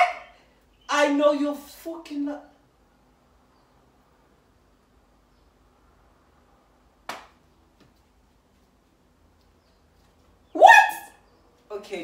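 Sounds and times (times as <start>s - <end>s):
woman squealing: 10.6s - 11.1s.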